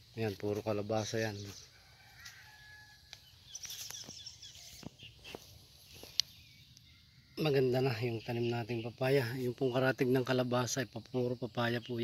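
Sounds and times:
faint bird chirps: 0:01.0 - 0:12.0.

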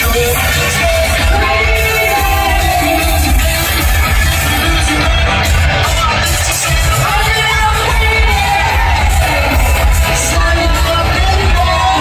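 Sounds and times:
man singing lead vocal: 0:00.0 - 0:12.0
pop-rock band playing loud: 0:00.0 - 0:12.0.

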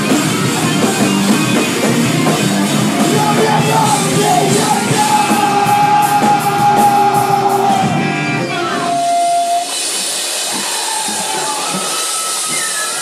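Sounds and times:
band playing electric guitars and drums: 0:00.0 - 0:13.0.

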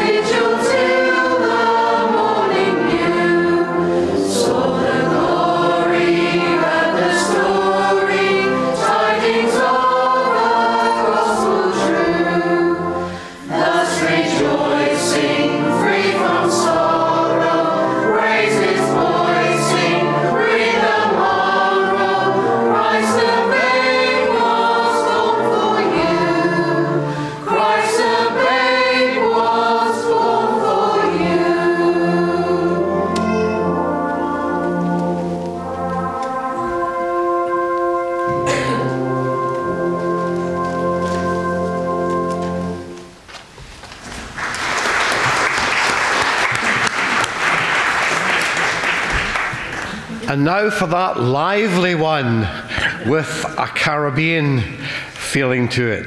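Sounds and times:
mixed choir singing: 0:00.0 - 0:42.9.

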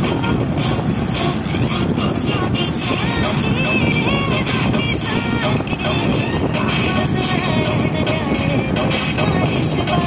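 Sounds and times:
car driving at highway speed: 0:00.0 - 0:10.0.

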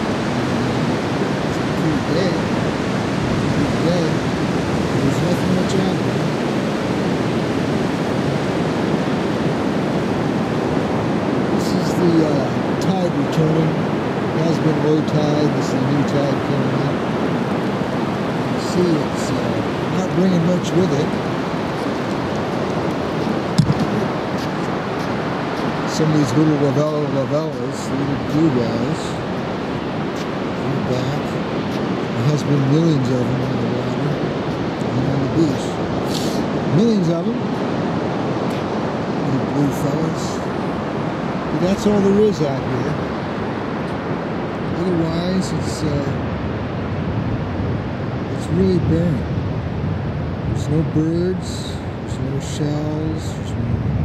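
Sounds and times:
ocean waves breaking on beach: 0:00.0 - 0:54.0.

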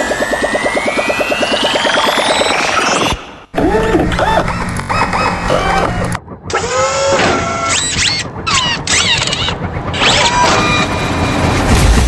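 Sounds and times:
warbling electronic blips: 0:00.0 - 0:11.6
steady low hum: 0:03.3 - 0:12.0.

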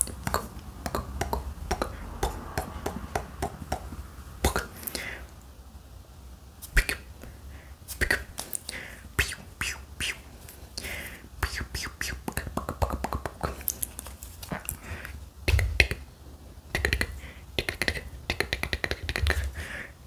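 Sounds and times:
whispered mouth noises: 0:00.0 - 0:05.4, 0:06.6 - 0:16.1, 0:16.7 - 0:19.6.

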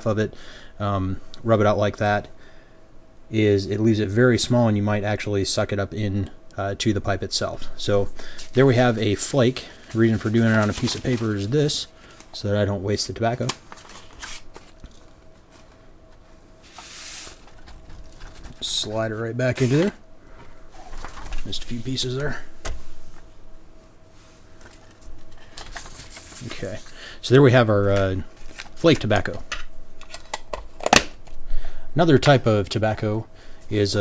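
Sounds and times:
paper rustling: 0:09.7 - 0:12.4, 0:13.4 - 0:15.8, 0:16.7 - 0:18.9, 0:19.5 - 0:20.0, 0:20.7 - 0:21.9, 0:24.6 - 0:27.0, 0:28.3 - 0:29.3
tobacco sliding off paper: 0:16.7 - 0:17.6.

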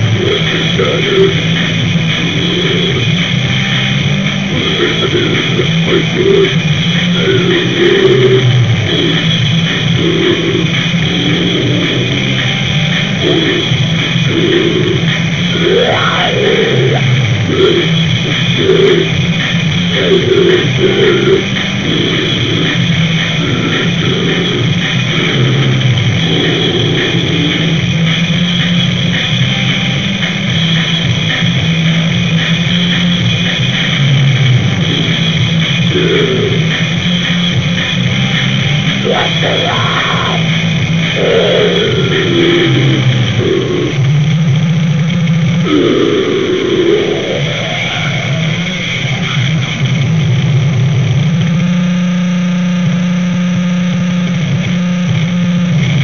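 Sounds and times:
bass guitar: 0:00.0 - 0:56.0
distorted guitar: 0:00.0 - 0:56.0.

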